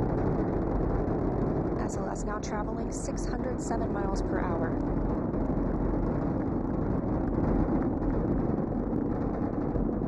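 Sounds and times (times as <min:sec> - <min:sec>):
rocket engines roaring: 0:00.0 - 0:10.0.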